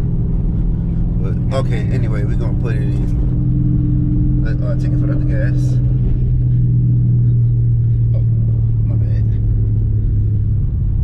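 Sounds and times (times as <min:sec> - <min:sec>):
car engine droning from inside cabin: 0:00.0 - 0:11.0.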